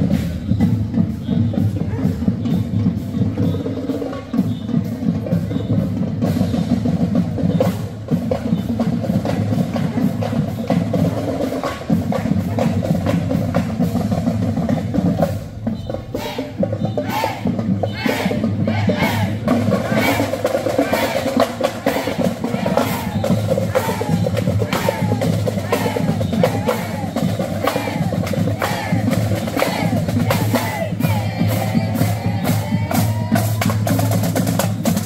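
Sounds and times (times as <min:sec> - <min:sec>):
marching drums and percussion: 0:00.0 - 0:35.0
wind instruments: 0:00.0 - 0:35.0.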